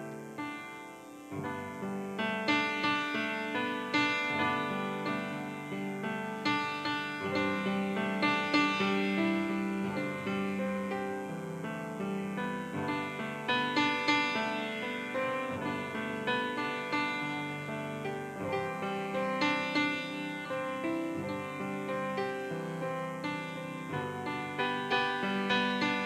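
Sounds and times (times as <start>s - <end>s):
piano music: 0.0s - 26.0s.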